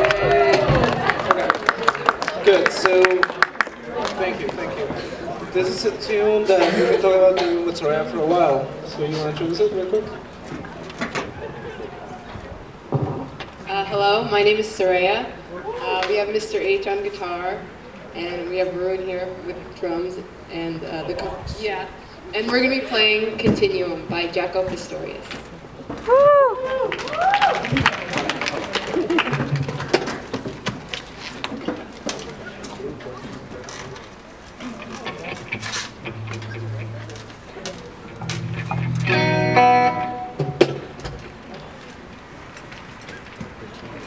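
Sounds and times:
short low hum: 0:36.0 - 0:39.5.

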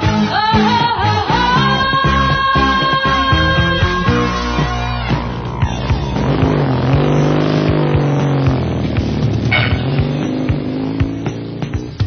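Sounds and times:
music: 0:00.0 - 0:12.0
vehicle engine: 0:04.2 - 0:12.0.

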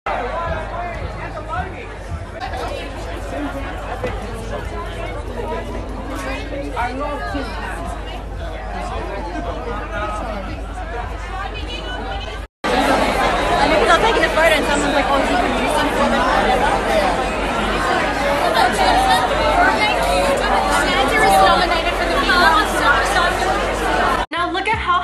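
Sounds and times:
music: 0:00.1 - 0:12.4
crowd chatter: 0:00.1 - 0:25.0.

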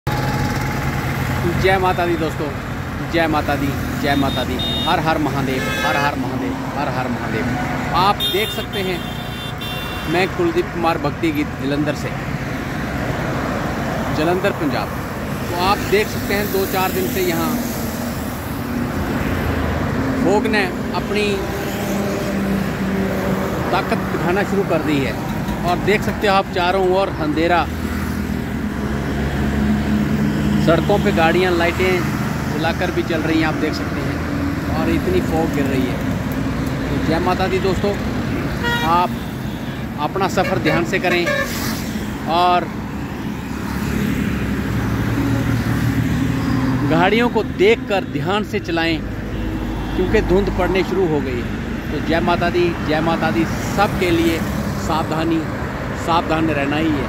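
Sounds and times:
highway traffic passing: 0:00.0 - 0:57.0.

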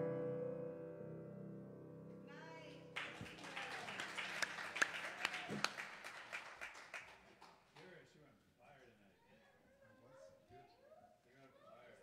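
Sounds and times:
small group clapping: 0:03.0 - 0:08.0.

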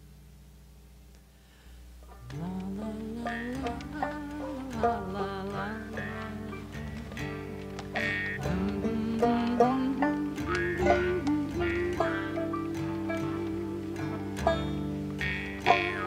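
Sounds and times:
plucked strings: 0:02.0 - 0:16.0
sliding melody line: 0:02.3 - 0:16.0.

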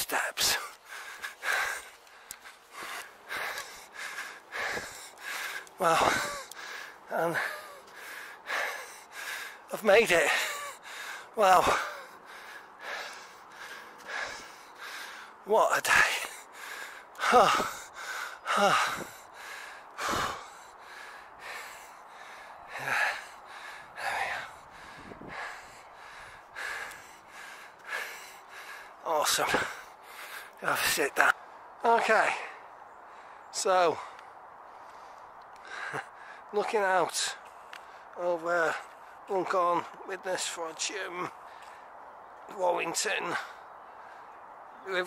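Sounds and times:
man breathing hard: 0:00.0 - 0:31.7, 0:32.3 - 0:39.4, 0:41.2 - 0:42.0, 0:43.3 - 0:44.7.

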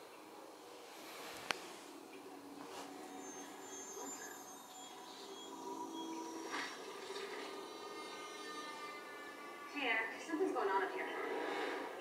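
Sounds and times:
sustained held music tones: 0:00.0 - 0:11.3.

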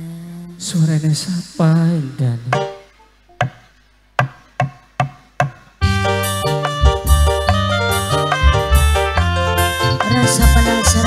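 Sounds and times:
percussion strikes counting in: 0:02.5 - 0:11.0
band playing sustained notes: 0:05.8 - 0:11.0.

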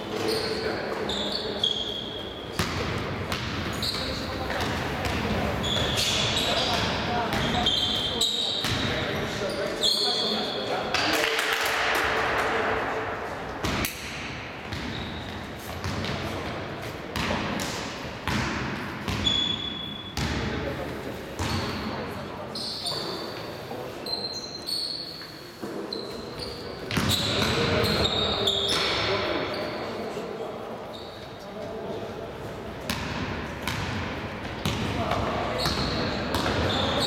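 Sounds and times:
sneakers squeaking on court: 0:00.0 - 0:11.0, 0:14.6 - 0:16.5, 0:17.1 - 0:20.4, 0:21.4 - 0:30.0, 0:30.9 - 0:31.4, 0:32.9 - 0:37.0
players' voices: 0:00.0 - 0:13.6.

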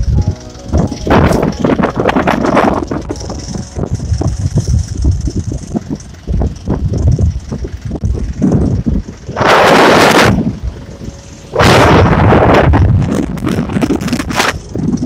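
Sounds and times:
road noise: 0:00.0 - 0:15.0
truck engine: 0:00.0 - 0:15.0
wind buffeting microphone: 0:00.0 - 0:15.0.

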